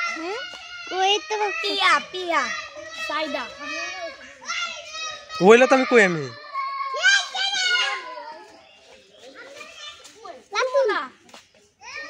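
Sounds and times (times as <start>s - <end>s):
boys talking and calling: 0.0s - 12.0s.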